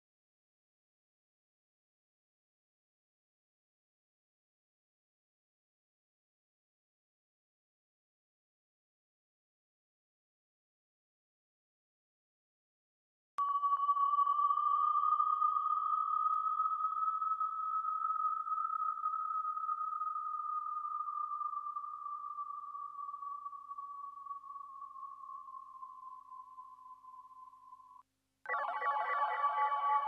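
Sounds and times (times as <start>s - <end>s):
sustained high tone: 28.5s - 30.0s.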